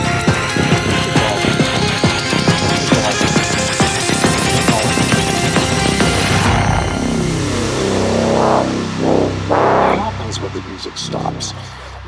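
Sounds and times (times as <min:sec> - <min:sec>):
filtered synth swell: 0:00.0 - 0:10.8
sustained synth chord and bass: 0:00.0 - 0:11.5.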